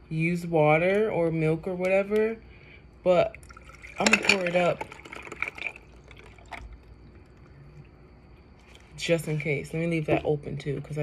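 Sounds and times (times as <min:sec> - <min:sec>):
water poured into glass of ice: 0:03.4 - 0:07.4.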